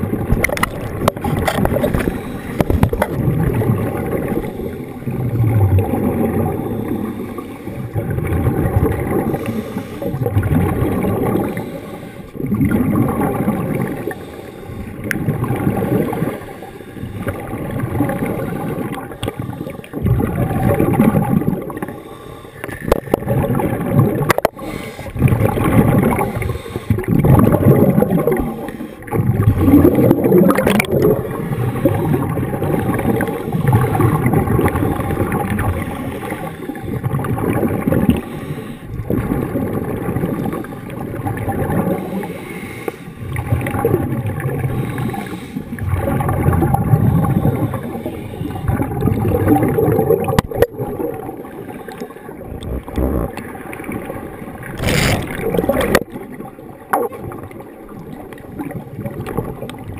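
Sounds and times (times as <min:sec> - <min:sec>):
faint steady hum: 0:00.0 - 0:59.9
regulator bubbles gurgling underwater: 0:00.0 - 0:59.9.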